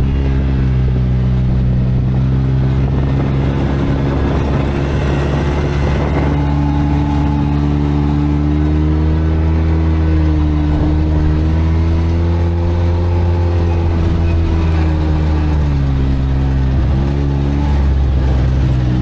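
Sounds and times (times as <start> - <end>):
utility vehicle engine running: 0.0 - 19.0.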